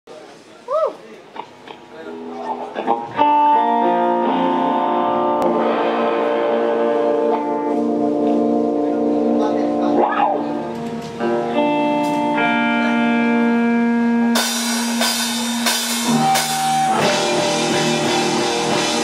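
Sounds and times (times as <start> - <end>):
electric guitars playing ringing chords: 1.4 - 19.0.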